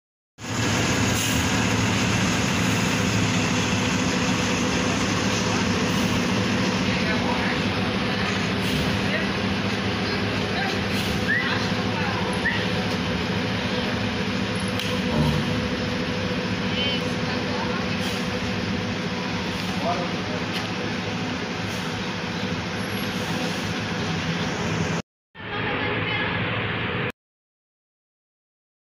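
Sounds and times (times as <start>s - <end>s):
bus diesel engine humming: 0.4s - 26.2s.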